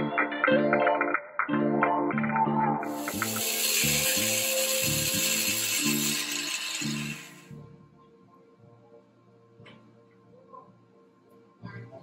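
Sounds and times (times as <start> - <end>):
harsh hiss of metalwork: 2.9 - 7.5.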